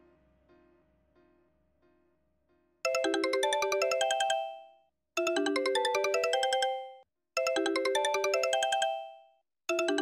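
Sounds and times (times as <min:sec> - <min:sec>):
phone ringtone chiming notes: 0:02.9 - 0:10.0.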